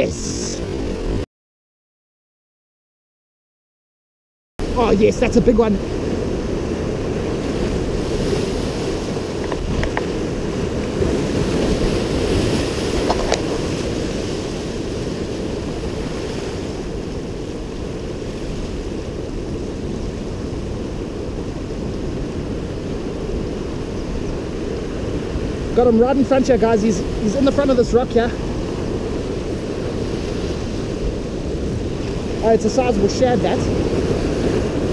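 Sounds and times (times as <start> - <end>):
surf breaking over rocks: 4.6 - 34.9
wind on microphone: 4.6 - 34.9.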